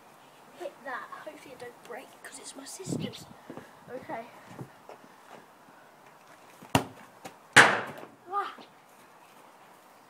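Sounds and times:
ball banging on something hard: 6.7s - 7.0s, 7.6s - 8.1s
football kicked with a thud: 6.7s - 7.0s, 7.6s - 8.1s.

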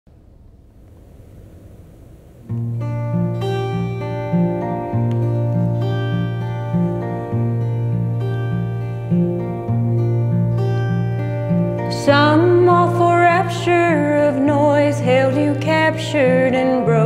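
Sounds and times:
acoustic guitar picking: 2.4s - 17.0s.

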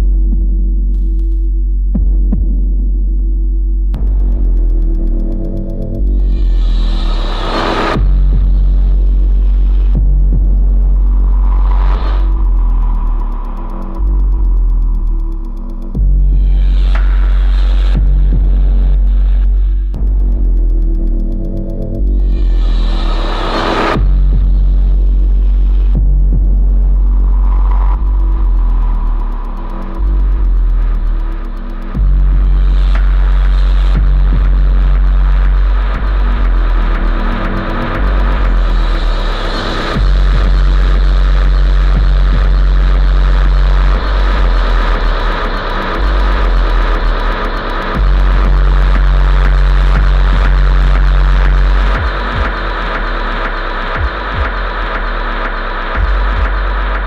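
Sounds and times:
deep sub-bass notes: 0.0s - 57.0s
dense noisy electronic texture: 0.0s - 57.0s.

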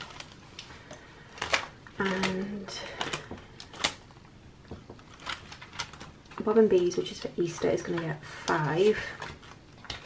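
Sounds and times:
plastic pockets crinkling: 0.0s - 10.0s.

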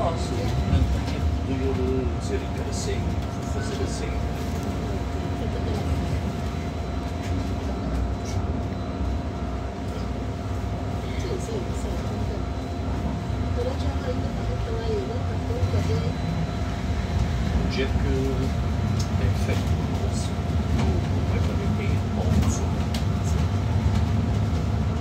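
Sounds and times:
bus road rumble: 0.0s - 25.0s
faint passenger voices: 0.0s - 25.0s.

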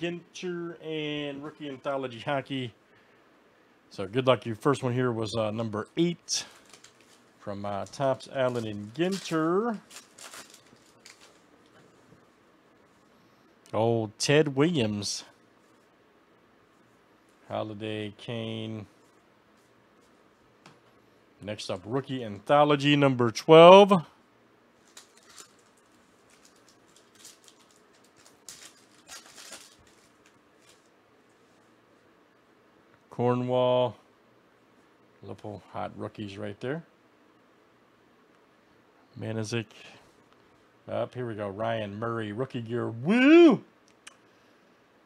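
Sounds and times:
faint rustling of cards: 4.2s - 16.0s, 18.5s - 22.4s, 24.7s - 32.1s
wrapper crinkling and tearing: 6.3s - 11.8s, 24.8s - 31.5s.

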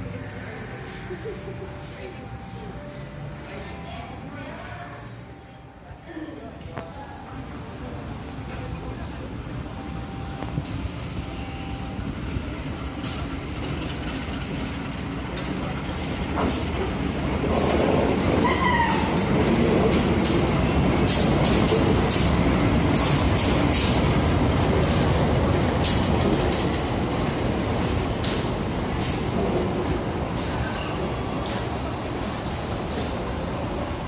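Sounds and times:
locomotive engine and wheels rumbling: 0.0s - 34.0s.

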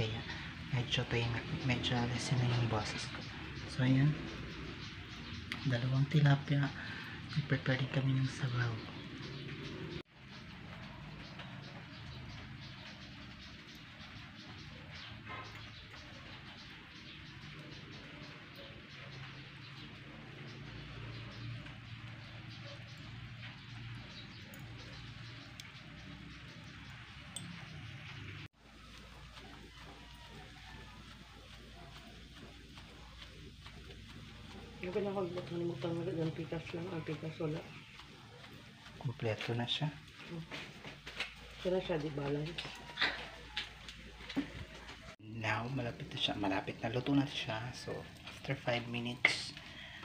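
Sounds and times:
crackling coals: 0.0s - 50.0s
fish grilling over charcoal: 0.0s - 50.0s.

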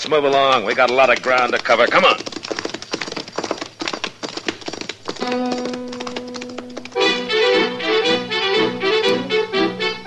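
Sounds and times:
horse hoofbeats: 0.0s - 9.3s
held brass chord: 7.0s - 10.0s.

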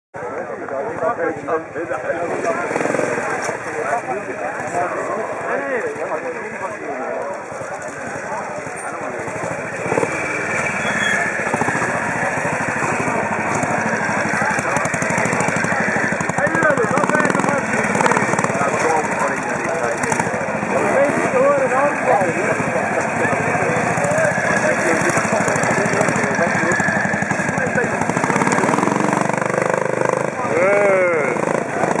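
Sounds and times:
people talking: 0.2s - 32.0s
motorcycle engine running: 2.2s - 32.0s.

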